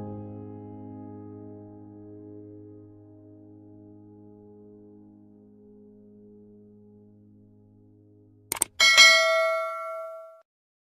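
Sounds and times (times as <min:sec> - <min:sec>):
notification bell ding: 0:08.6 - 0:10.4.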